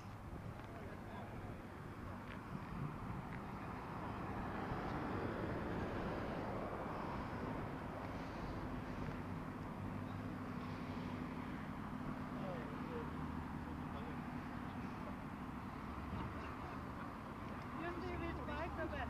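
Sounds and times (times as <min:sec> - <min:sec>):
steady engine hum: 0:00.0 - 0:19.0
vehicle passing: 0:00.7 - 0:19.0.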